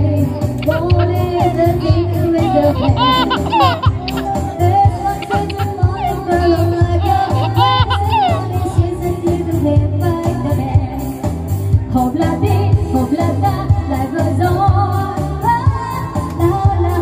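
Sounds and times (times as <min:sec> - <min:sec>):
heavy bass beat: 0:00.0 - 0:09.9
electronic keyboard band: 0:00.0 - 0:17.0
woman singing into a microphone: 0:00.0 - 0:17.0.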